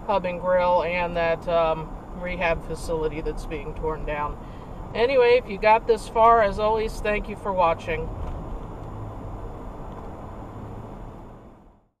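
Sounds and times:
road noise inside moving car: 0.0s - 12.0s.

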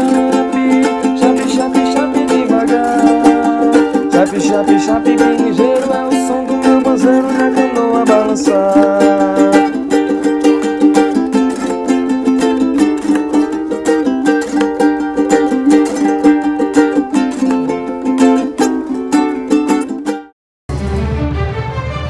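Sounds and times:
ukuleles strummed together: 0.0s - 20.3s.

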